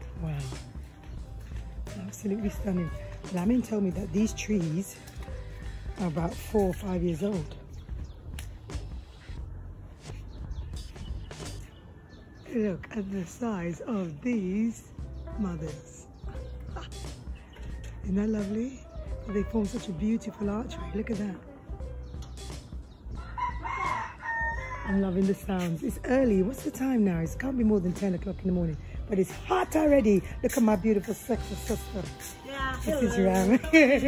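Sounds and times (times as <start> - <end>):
birds chirping: 0.0 - 34.0
steady low rumble: 5.3 - 11.8
rooster crowing: 23.2 - 25.0.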